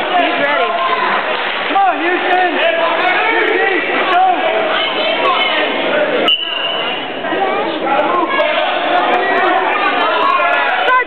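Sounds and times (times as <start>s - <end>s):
spectators shouting: 0.0s - 11.0s.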